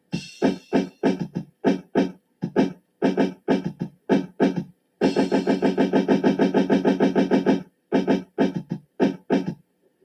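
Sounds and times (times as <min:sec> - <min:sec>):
dj scratching a sample: 0:00.1 - 0:09.6.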